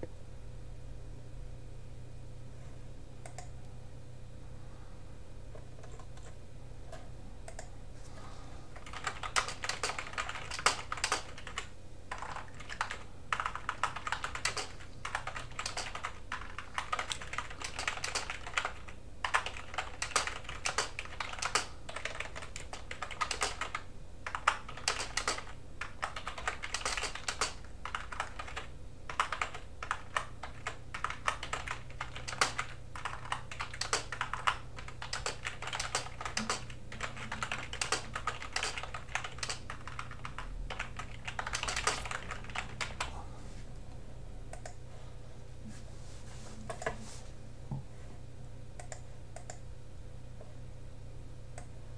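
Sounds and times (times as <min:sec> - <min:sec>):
computer keyboard typing: 0:03.2 - 0:03.6, 0:05.6 - 0:07.7, 0:08.7 - 0:43.1, 0:44.5 - 0:44.8, 0:48.8 - 0:49.6.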